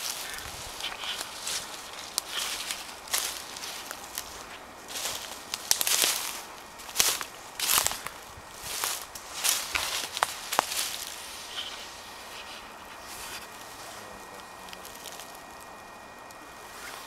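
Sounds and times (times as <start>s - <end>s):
twigs snapping: 0.0s - 13.8s, 14.4s - 16.4s
footsteps through dry leaves: 0.0s - 15.8s.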